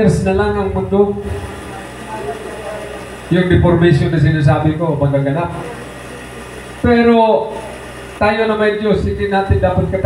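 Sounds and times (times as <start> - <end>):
man speaking over amplifier: 0.0 - 5.9, 6.8 - 7.6, 8.2 - 10.0
fan or air-conditioning hum: 0.0 - 10.0.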